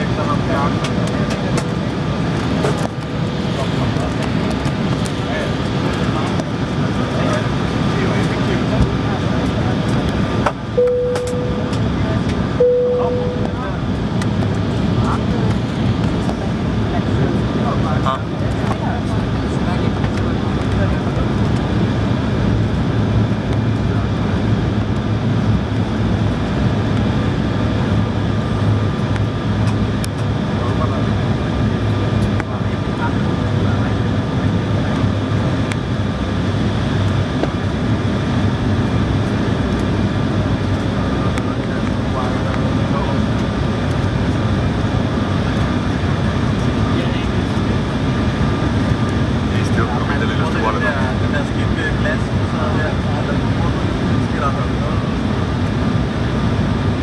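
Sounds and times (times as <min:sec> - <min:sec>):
airliner cabin rumble: 0:00.0 - 0:57.0
faint steady engine tones: 0:00.0 - 0:57.0.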